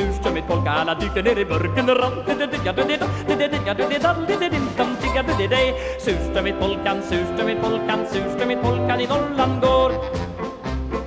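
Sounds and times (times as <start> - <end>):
oom-pah bass: 0.0 - 11.0
polka song with yodel-like singing: 0.0 - 11.0.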